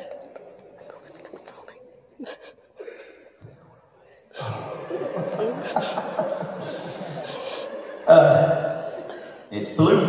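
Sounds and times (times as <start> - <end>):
audience murmuring: 0.0 - 10.0.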